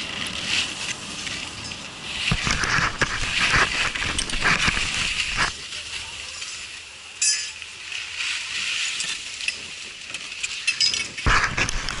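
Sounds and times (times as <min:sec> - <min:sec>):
gear scraping on packed snow: 0:00.0 - 0:06.4
rush of noise: 0:00.0 - 0:07.1, 0:11.2 - 0:12.0.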